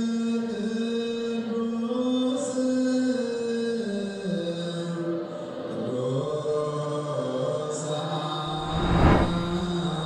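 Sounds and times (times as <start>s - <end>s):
slow vocal chanting: 0.0s - 8.5s
whoosh: 8.5s - 10.0s.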